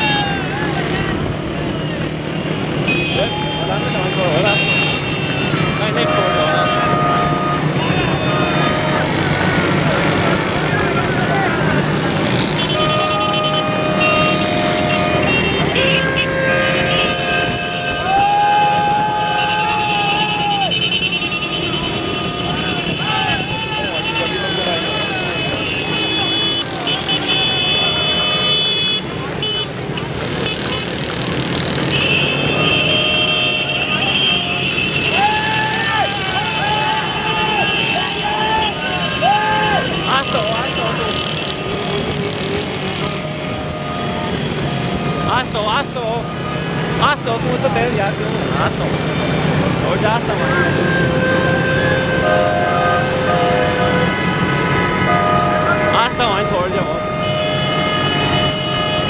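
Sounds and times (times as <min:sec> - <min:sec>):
men shouting: 0:00.0 - 0:01.2, 0:17.9 - 0:20.9, 0:22.4 - 0:25.5, 0:35.0 - 0:41.2
horns blasting: 0:00.0 - 0:59.0
small motorcycles running: 0:34.1 - 0:52.6.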